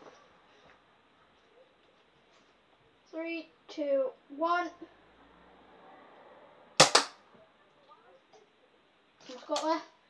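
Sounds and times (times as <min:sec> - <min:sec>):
toy dart blaster snaps: 0:06.8 - 0:07.2.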